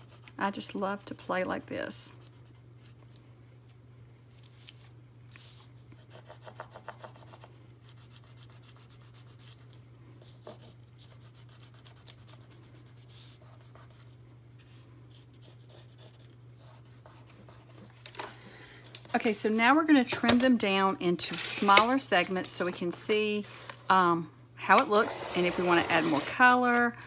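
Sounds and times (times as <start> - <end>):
pencil scribbling on paper: 15.4 - 17.9.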